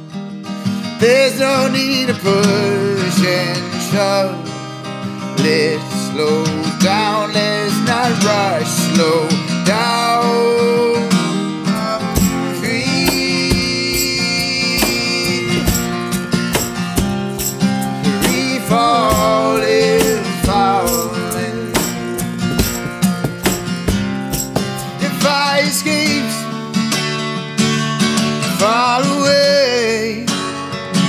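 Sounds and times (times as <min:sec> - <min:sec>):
acoustic guitar strumming: 0:00.0 - 0:31.0
cajon beat: 0:11.7 - 0:26.2.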